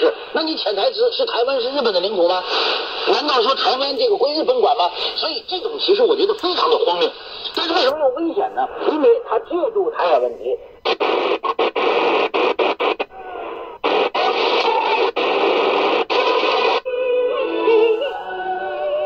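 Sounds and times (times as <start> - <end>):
radio static hiss: 0.0 - 16.8
radio speech from small speaker: 0.0 - 18.3.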